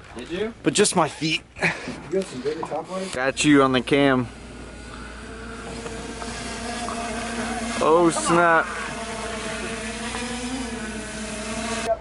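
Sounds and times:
drone propellers humming: 2.6s - 12.0s.

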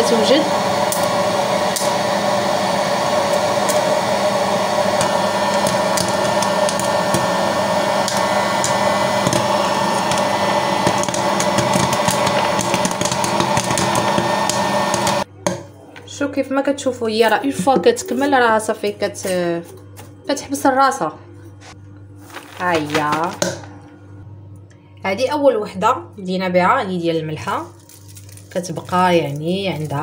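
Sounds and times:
popcorn maker blower whirring: 0.0s - 15.9s, 21.5s - 24.2s, 27.4s - 30.0s
corn kernels popping: 4.9s - 15.2s, 27.6s - 30.0s.

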